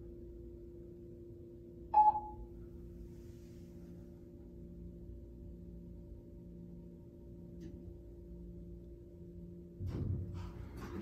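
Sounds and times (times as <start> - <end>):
low hum from elevator car: 0.0 - 11.0
elevator chime: 2.0 - 2.4.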